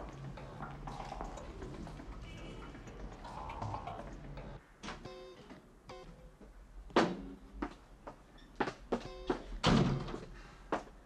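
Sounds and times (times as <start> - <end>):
background music: 0.0 - 6.4
door shutting with a thud: 9.6 - 10.2.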